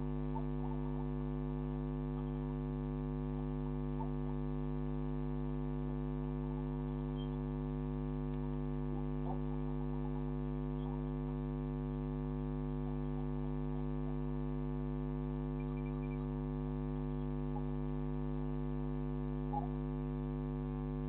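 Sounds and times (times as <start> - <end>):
electrical mains hum: 0.0 - 21.0
faint short chirps: 7.1 - 7.5, 15.6 - 16.4.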